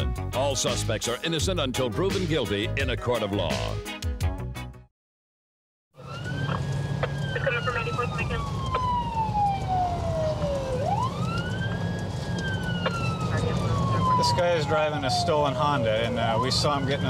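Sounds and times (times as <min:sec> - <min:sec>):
car driving rumble: 0:06.0 - 0:17.0
police siren wailing: 0:06.0 - 0:17.0.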